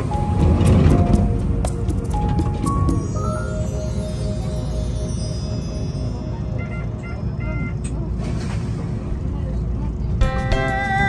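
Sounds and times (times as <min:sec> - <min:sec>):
electric train low rumble: 0:00.0 - 0:11.0.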